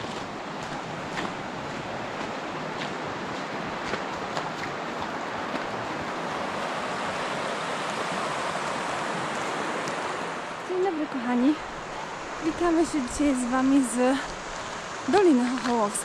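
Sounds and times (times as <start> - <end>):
flowing stream water: 0.0 - 16.0.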